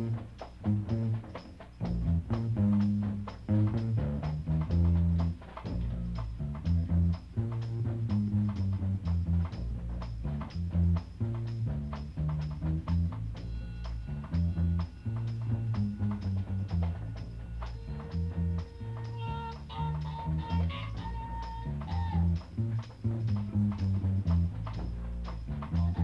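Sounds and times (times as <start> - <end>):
bass line: 0.0 - 26.0
drums: 0.0 - 26.0
lead instrument holding long notes: 13.4 - 22.4.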